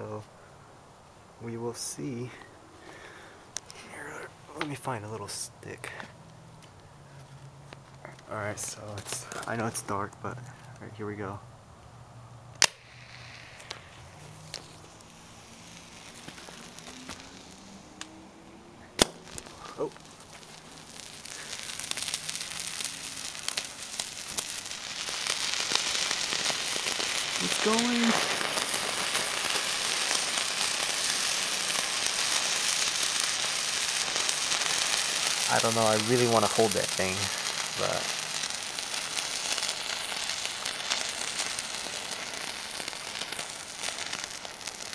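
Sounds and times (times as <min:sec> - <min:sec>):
faint crackles: 0:00.0 - 0:11.9, 0:12.5 - 0:44.9
flare firing pop: 0:12.6 - 0:18.2, 0:18.9 - 0:35.5.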